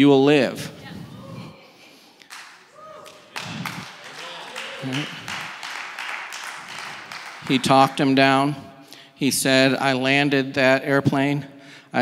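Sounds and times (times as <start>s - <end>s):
congregation clapping: 2.2s - 8.6s.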